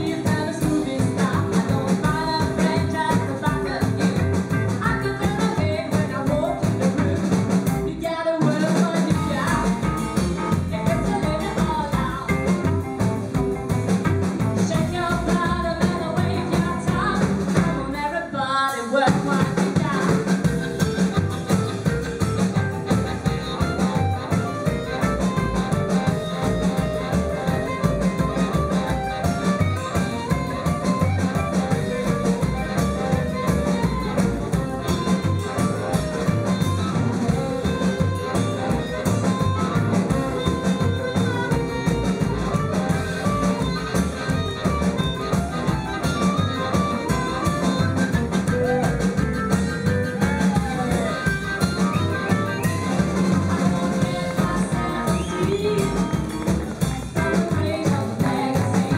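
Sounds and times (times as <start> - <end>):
blues harmonica: 0.0 - 18.1, 18.8 - 58.9
rhythm and blues band playing: 0.0 - 58.9.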